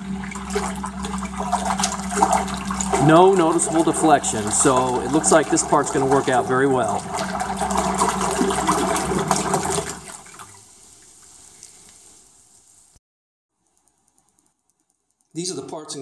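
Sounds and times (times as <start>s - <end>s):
electric motor propeller churning water: 0.0s - 10.6s
water sloshing: 0.0s - 12.0s.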